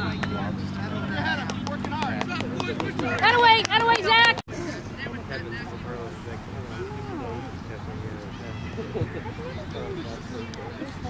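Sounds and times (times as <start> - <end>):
faint chatter: 0.0 - 11.0.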